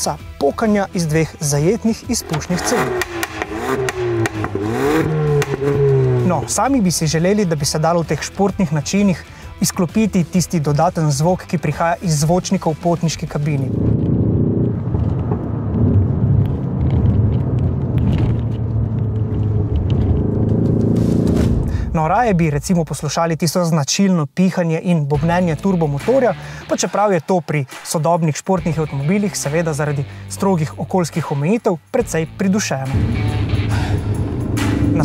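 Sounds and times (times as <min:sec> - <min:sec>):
exhaust pops and crackles: 0:01.9 - 0:07.8, 0:11.4 - 0:23.2
artificial engine sound from speaker: 0:02.0 - 0:06.9
car exhaust note: 0:02.1 - 0:06.9, 0:13.7 - 0:22.0, 0:32.9 - 0:35.0
car engine from inside cabin: 0:02.3 - 0:06.4, 0:18.4 - 0:21.6.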